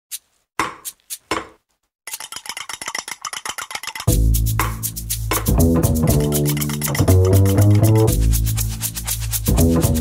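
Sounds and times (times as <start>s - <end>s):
rapid clicking: 2.1s - 5.5s, 6.1s - 9.5s.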